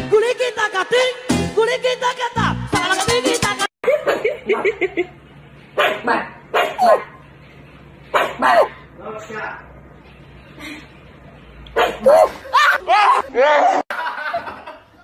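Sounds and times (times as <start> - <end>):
puppy barking in high yips: 5.8 - 7.2, 8.1 - 8.8, 11.8 - 13.2.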